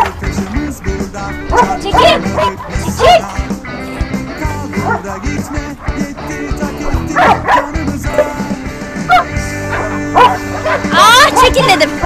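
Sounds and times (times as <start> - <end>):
background music: 0.0 - 12.0
puppies yipping and barking: 1.3 - 11.5.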